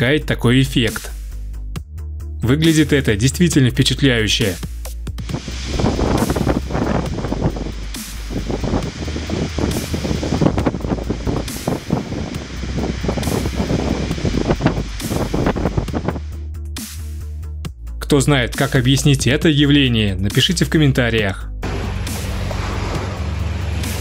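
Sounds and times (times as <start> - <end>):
background music: 0.0 - 24.0
wind rustling trees: 5.2 - 16.6.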